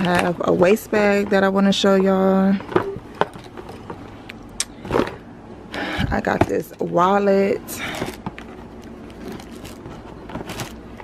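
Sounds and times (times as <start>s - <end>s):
packaging rustling: 7.8s - 11.0s.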